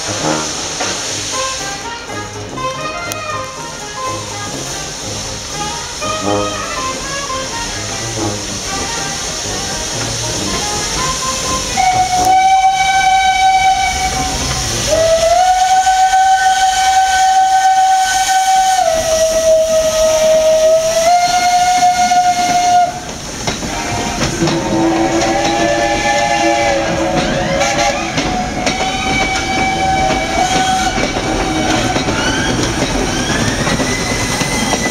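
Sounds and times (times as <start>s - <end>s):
coaches rolling on rails: 0.0s - 34.9s
escaping steam: 0.0s - 34.9s
steam locomotive whistles: 0.0s - 34.9s.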